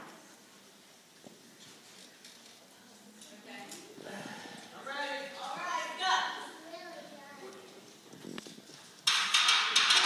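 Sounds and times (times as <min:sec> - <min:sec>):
faint indistinct voices: 0:01.6 - 0:08.7.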